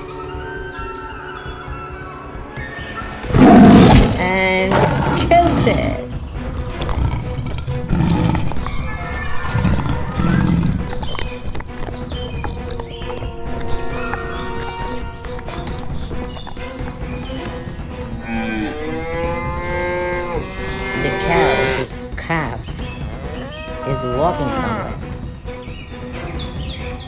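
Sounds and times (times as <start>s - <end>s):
background music with held tones: 5.6s - 27.0s
cow mooing: 18.2s - 21.9s, 23.0s - 25.0s.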